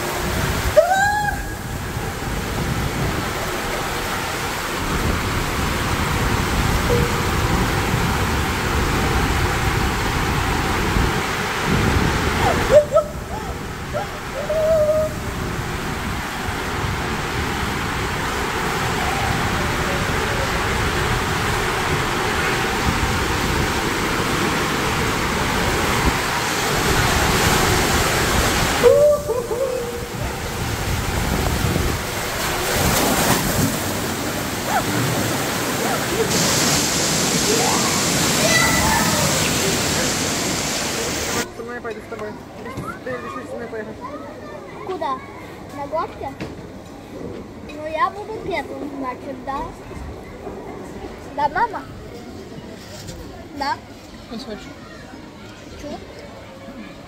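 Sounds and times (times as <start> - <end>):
water rushing through slide tube: 0.0 - 41.7
person exclaiming: 0.8 - 1.6.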